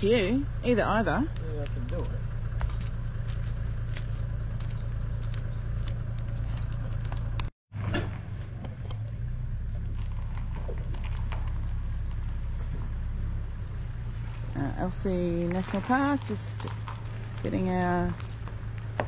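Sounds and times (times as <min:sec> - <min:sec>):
vehicle engine running low: 0:00.0 - 0:19.0.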